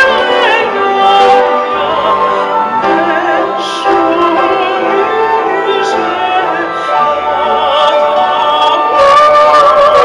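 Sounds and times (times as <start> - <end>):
symphony orchestra: 0.0 - 10.0
woman singing opera: 0.0 - 10.0.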